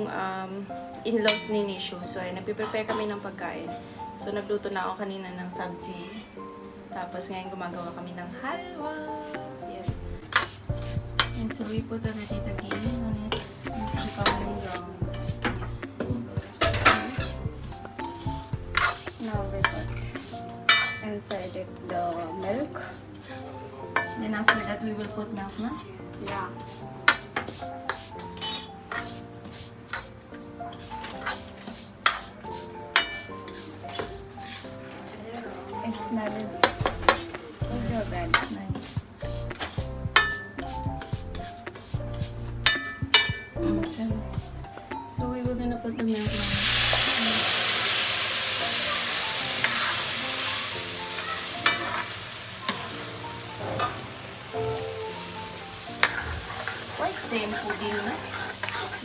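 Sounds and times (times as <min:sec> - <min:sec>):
background music: 0:00.0 - 0:59.0
ladle scraping metal wok: 0:10.2 - 0:44.7, 0:46.2 - 0:59.0.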